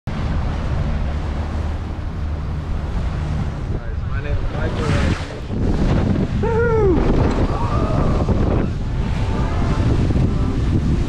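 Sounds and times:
boat engine rumble: 0.0s - 11.0s
water noise: 0.0s - 11.0s
wind buffeting microphone: 0.1s - 11.0s.

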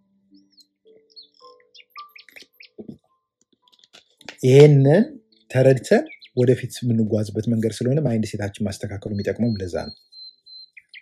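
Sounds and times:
high bird-like chirps: 0.3s - 3.0s, 5.2s - 6.6s, 9.0s - 11.0s.

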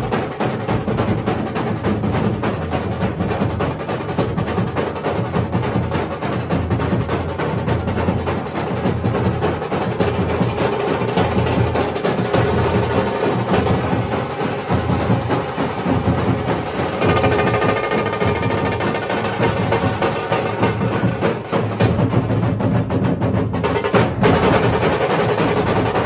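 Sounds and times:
dhol drums beaten fast: 0.0s - 26.0s.

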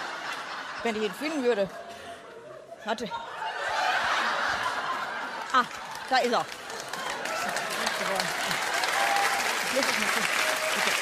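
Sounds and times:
audience laughing: 0.0s - 8.8s.

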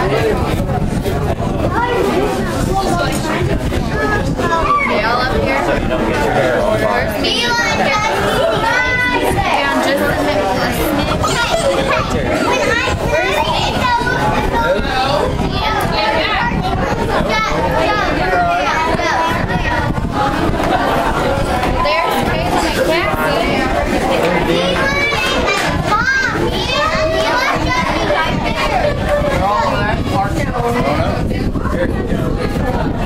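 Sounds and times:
babble of voices: 0.0s - 33.0s
children chattering: 0.0s - 33.0s.

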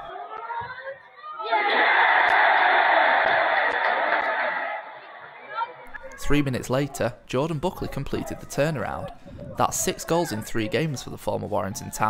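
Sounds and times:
football crowd cheering and shouting: 0.0s - 12.0s.

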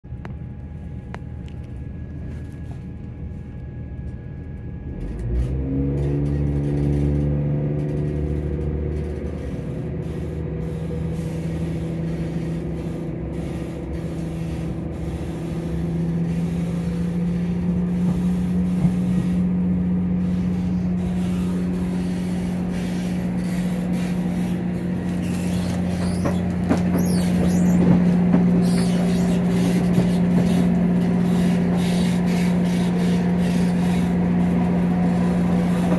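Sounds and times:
train diesel engine revving: 4.8s - 35.9s.

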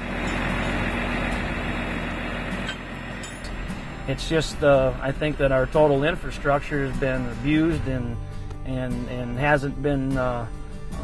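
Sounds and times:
pickup truck driving past: 0.0s - 7.9s.

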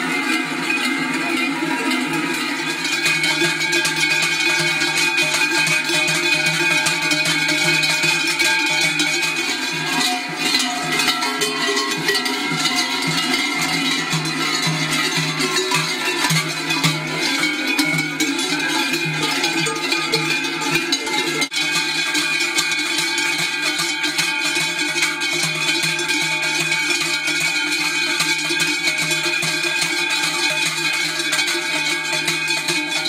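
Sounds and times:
cowbells clanging: 0.0s - 33.0s.

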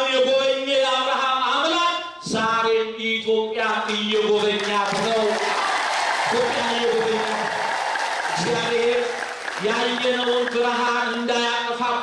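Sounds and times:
clapping: 3.9s - 11.3s
man chanting into microphone: 8.4s - 12.0s.

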